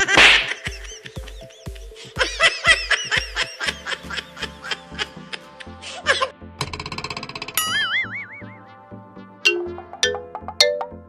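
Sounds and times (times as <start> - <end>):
background music with steady beat: 0.0 - 11.0
springy wobbling tone: 9.5 - 11.0.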